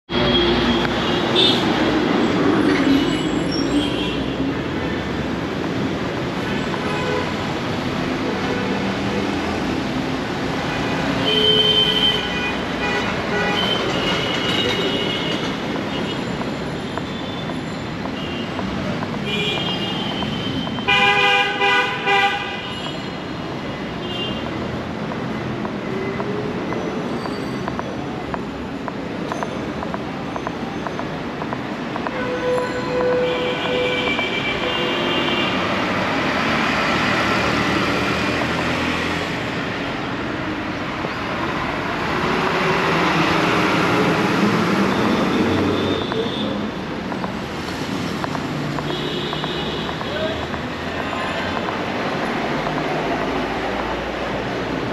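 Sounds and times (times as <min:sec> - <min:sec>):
street traffic: 0:00.0 - 0:54.9
buses passing: 0:00.1 - 0:11.3, 0:11.9 - 0:54.9
vehicle horns: 0:19.2 - 0:23.2, 0:32.1 - 0:36.0, 0:48.8 - 0:50.4.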